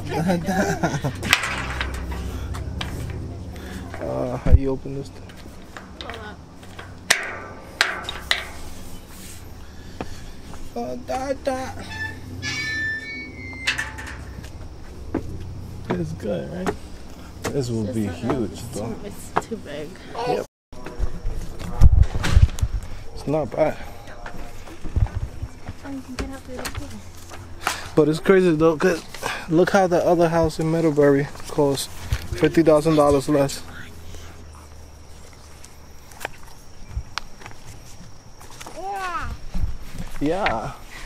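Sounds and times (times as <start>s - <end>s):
metal railing clanking: 0.2s - 4.5s, 5.2s - 9.5s, 11.2s - 14.5s
footsteps: 0.6s - 10.8s, 12.0s - 18.5s, 24.2s - 28.0s, 34.4s - 41.0s.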